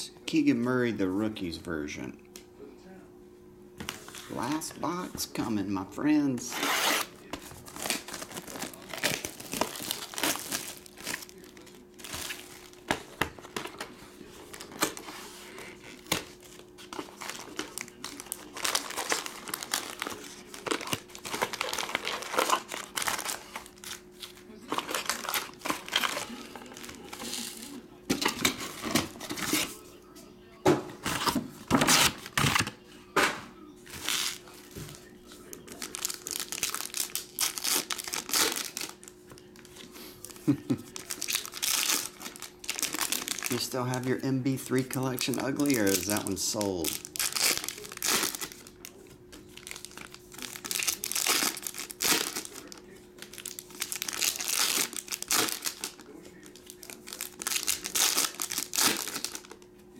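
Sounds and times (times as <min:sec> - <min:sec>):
foil packs crinkling: 0:06.4 - 0:29.8, 0:33.9 - 0:59.7
foil pack tearing open: 0:06.5 - 0:27.6, 0:33.9 - 0:34.5, 0:35.4 - 0:48.8, 0:49.5 - 0:59.7
cellophane tearing and crumpling: 0:06.5 - 0:27.7, 0:31.1 - 0:32.7, 0:33.9 - 0:34.6, 0:35.4 - 0:59.7.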